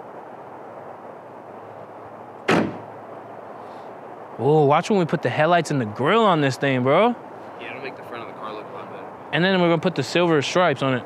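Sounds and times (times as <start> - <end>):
steady background hiss: 0.0 - 11.0
car hood slamming shut: 2.5 - 2.9.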